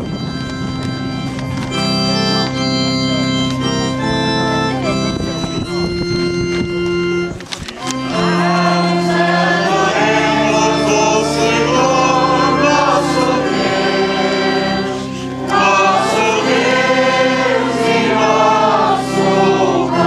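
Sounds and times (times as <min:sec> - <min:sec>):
held accompaniment chords: 0:00.0 - 0:20.0
congregation singing a hymn: 0:07.8 - 0:20.0.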